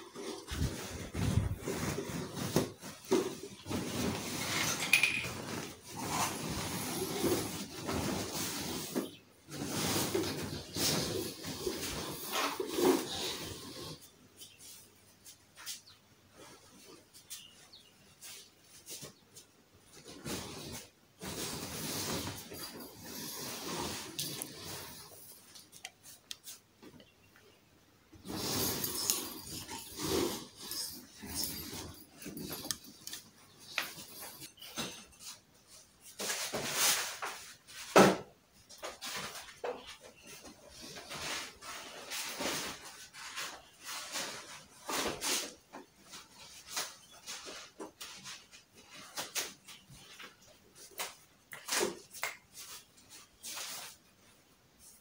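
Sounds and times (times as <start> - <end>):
fabric cover rustling: 0.1 - 13.7, 28.2 - 37.8.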